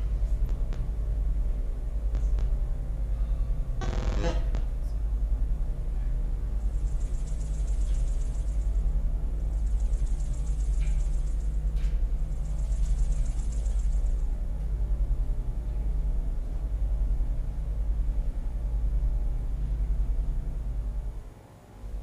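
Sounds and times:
faint high pulsing buzz: 0.0 - 22.0
steady low rumble: 0.0 - 22.0.

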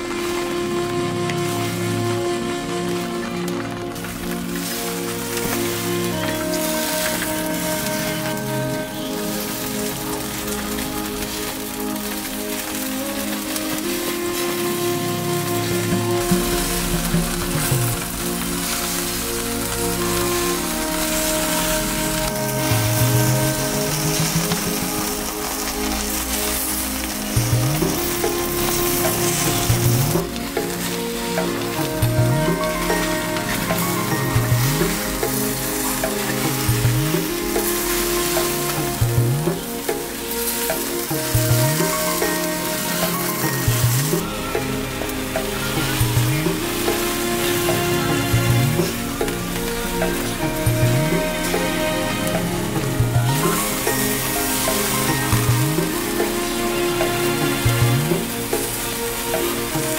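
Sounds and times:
background music with held notes: 0.0 - 59.9
skewers sizzling over charcoal: 0.0 - 59.9.

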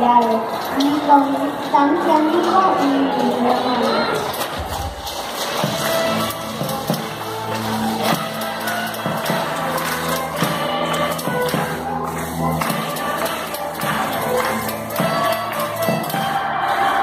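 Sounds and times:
string orchestra playing: 5.7 - 17.0.

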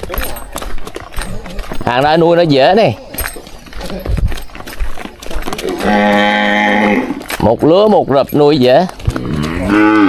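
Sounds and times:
footsteps on dirt path: 0.0 - 10.0
cow mooing: 5.6 - 7.2, 9.2 - 10.0.

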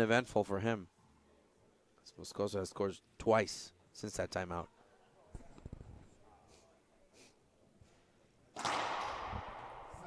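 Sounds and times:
racquet striking ball: 8.5 - 10.0.

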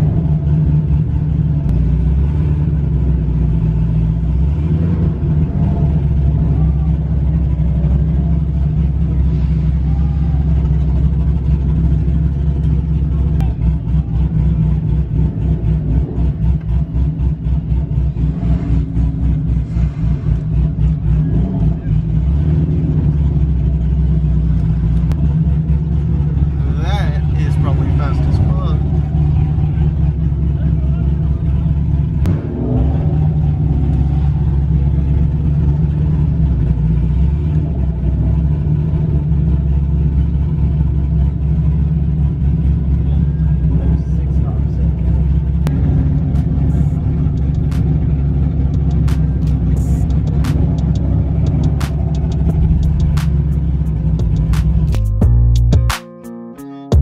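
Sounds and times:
car engine droning: 0.0 - 55.9
sharp clicks: 46.3 - 53.6.

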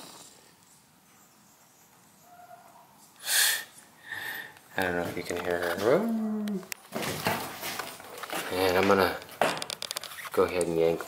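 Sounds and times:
dog whining: 5.8 - 6.7.

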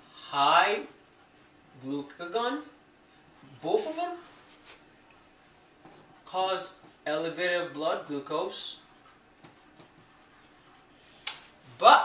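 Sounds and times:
marker writing on whiteboard: 0.6 - 1.9, 5.6 - 7.4, 8.0 - 10.9.

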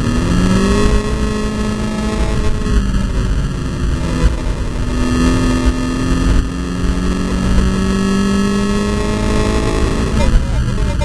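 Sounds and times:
race car engine accelerating: 0.0 - 11.0
road and wind rumble: 0.0 - 11.0.

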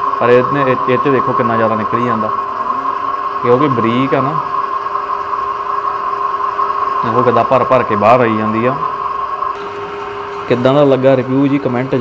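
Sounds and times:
oil press motor humming: 0.0 - 12.0.

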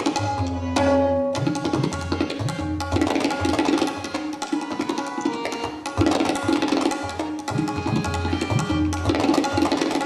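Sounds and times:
tabla solo: 0.0 - 10.0.

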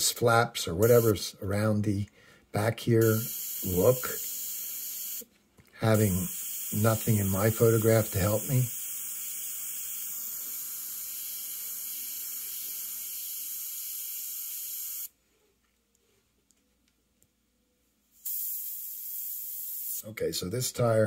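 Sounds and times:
airbrush hissing: 3.0 - 5.3, 5.9 - 15.1, 18.2 - 20.1.

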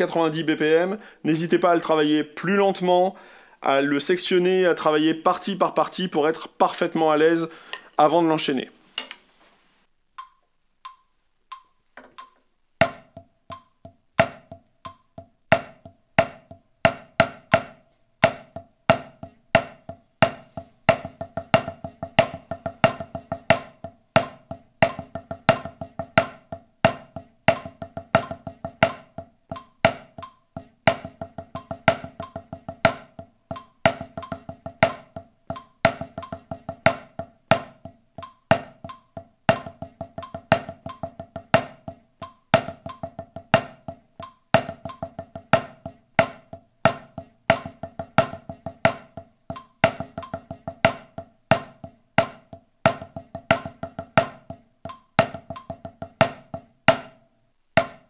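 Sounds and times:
drumsticks on practice pad: 8.9 - 9.2, 10.2 - 57.2, 57.8 - 58.0
metronome clicking: 10.2 - 16.6, 18.2 - 56.6.

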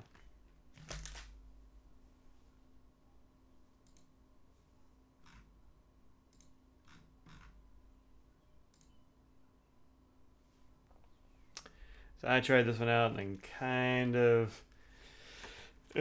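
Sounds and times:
faint steady hum: 0.0 - 16.0
soft clicks: 3.8 - 4.1, 6.3 - 7.0, 8.7 - 9.1.

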